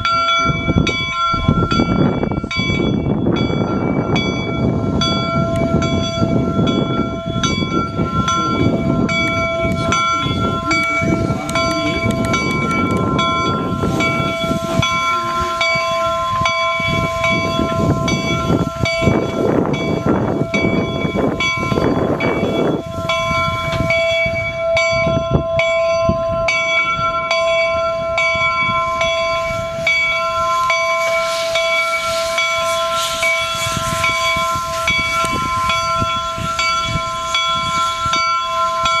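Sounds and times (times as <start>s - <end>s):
steam engine exhaust chuffing: 0.0s - 24.6s, 28.1s - 39.0s
steam hissing: 0.0s - 25.9s, 26.5s - 39.0s
locomotive bell ringing: 0.0s - 39.0s.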